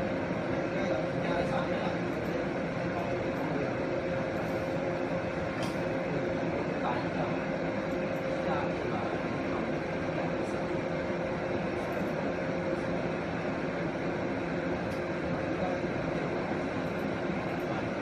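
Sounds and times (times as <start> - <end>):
laser marking machine hum: 0.0 - 18.0.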